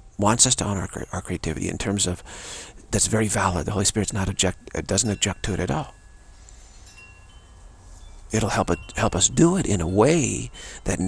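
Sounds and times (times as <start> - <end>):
low steady hum: 0.0 - 11.0
faint high chime: 3.2 - 11.0.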